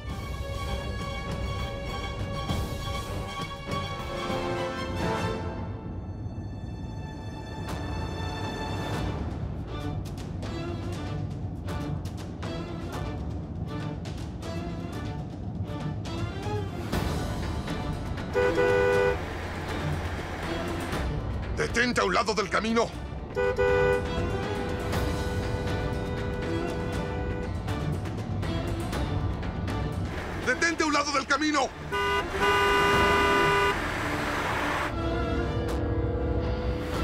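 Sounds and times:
background music: 0.0 - 37.0
moving car rumble: 9.1 - 22.0, 22.9 - 37.0
cars driving: 18.2 - 21.2, 30.0 - 36.8
car horn blast: 18.3 - 19.3, 23.3 - 24.9, 31.8 - 34.9.

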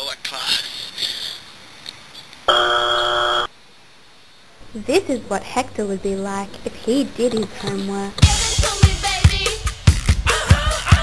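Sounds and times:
flat steady buzzer: 2.5 - 3.5.

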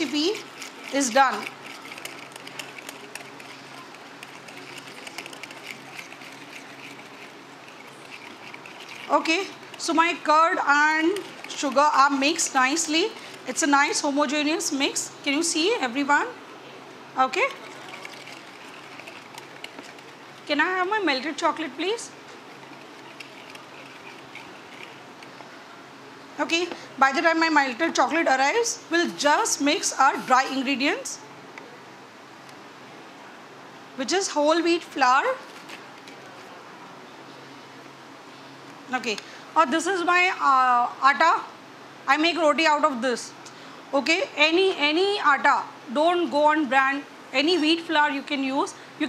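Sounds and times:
whisk clicking in plastic bowl: 0.0 - 13.7, 17.5 - 20.6, 22.5 - 25.4
background room noise: 0.0 - 49.0.

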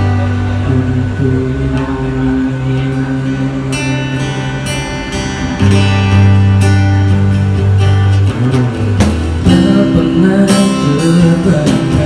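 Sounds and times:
acoustic guitars strumming chords: 0.0 - 12.0.

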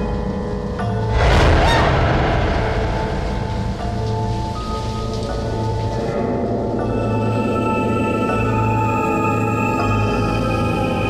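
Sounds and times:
eerie background music: 0.0 - 11.0
thunderclap crash: 1.1 - 5.4.

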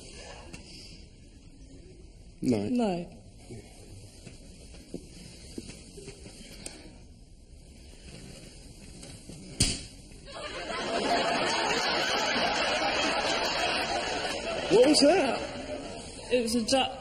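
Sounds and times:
studio audience laughter: 10.3 - 16.3.

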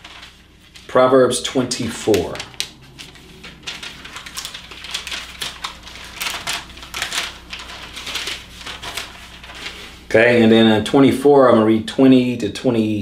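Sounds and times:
thin paper pages rustling: 0.0 - 10.1.

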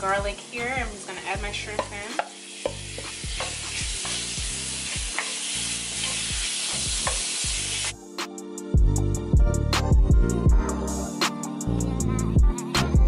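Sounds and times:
shrimp sizzling in butter: 0.4 - 8.0
music with a beat: 0.8 - 5.3, 6.3 - 13.0
spatula knocking against pan: 1.8 - 3.6.

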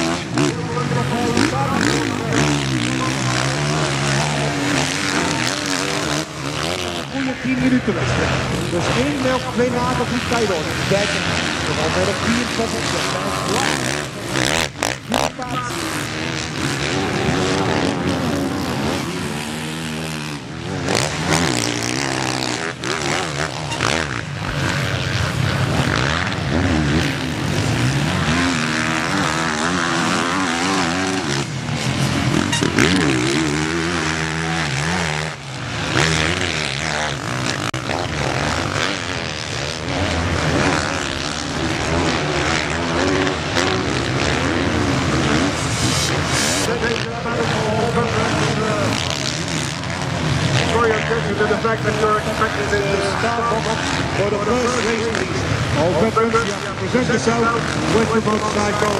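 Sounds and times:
motocross bike engines revving: 0.0 - 58.9.

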